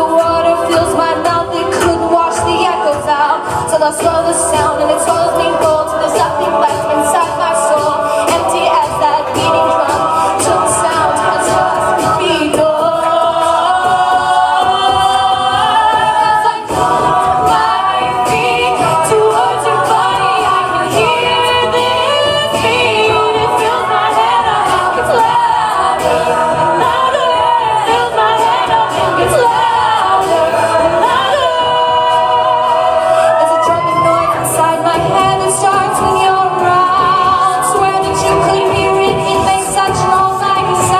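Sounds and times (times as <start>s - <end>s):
backing vocal harmonies: 0.0s - 40.9s
vocal percussion: 0.0s - 40.9s
woman singing lead: 0.0s - 40.9s.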